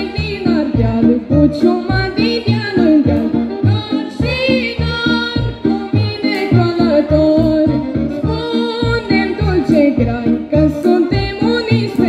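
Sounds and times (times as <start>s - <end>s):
amplified backing music with bass beat: 0.0s - 12.0s.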